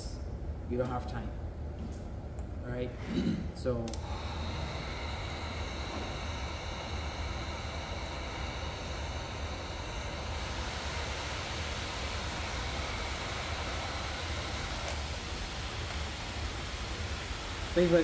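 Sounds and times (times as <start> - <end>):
heat gun fan blowing: 0.0 - 18.0.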